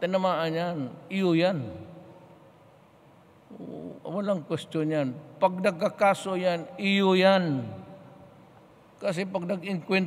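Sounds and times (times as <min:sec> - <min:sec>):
man speaking: 0:00.0 - 0:02.0, 0:03.5 - 0:08.0, 0:09.0 - 0:10.0.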